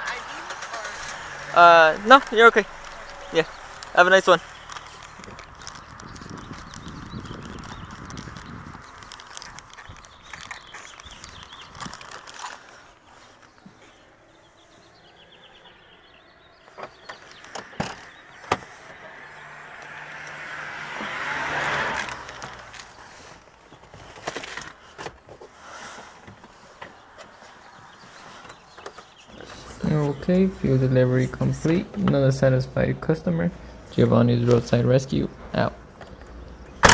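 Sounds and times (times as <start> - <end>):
passing car: 0.0 - 24.8
footsteps on pavement: 2.1 - 14.2
handheld camera rustle: 2.2 - 14.8, 22.0 - 30.6.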